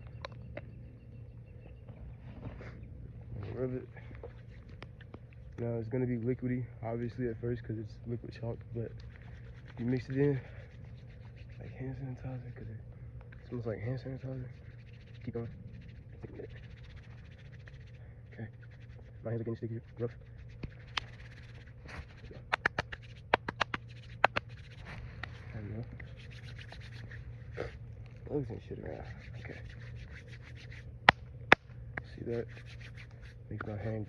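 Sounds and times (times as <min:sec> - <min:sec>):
hands rubbing wet chalk: 0:03.4 - 0:06.2, 0:08.0 - 0:34.0.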